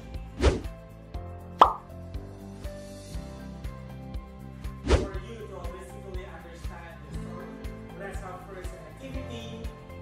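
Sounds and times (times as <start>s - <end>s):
light background music: 0.0s - 10.0s
cartoon pop sound effect: 1.6s - 1.9s.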